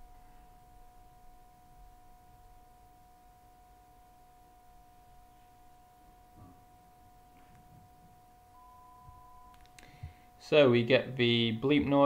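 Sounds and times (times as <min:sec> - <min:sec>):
faint steady background tone: 0:00.0 - 0:12.0.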